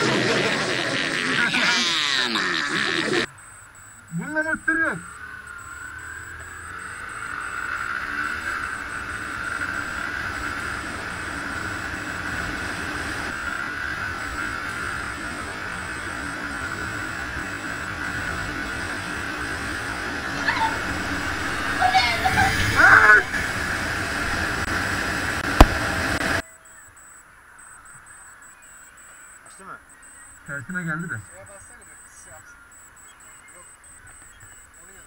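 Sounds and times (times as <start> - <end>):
motorcycle engine whine: 0.0 - 35.0
wind and road noise: 3.2 - 35.0.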